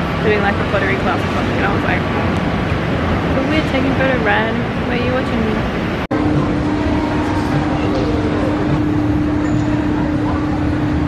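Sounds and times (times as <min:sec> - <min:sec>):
steady hum: 0:00.0 - 0:11.0
murmur of voices: 0:03.3 - 0:11.0.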